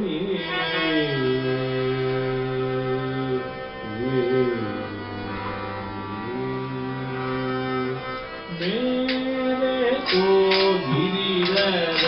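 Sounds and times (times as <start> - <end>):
harmonium sustained notes: 0.0 - 12.0.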